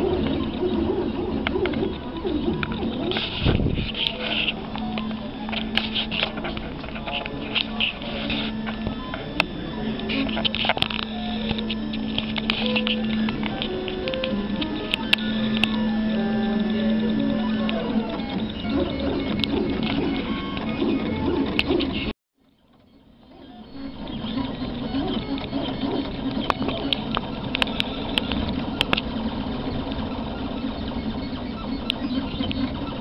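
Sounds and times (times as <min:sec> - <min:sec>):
printer stepper motors whining: 0:00.0 - 0:22.1, 0:22.7 - 0:33.0
small ticks: 0:24.2 - 0:29.1.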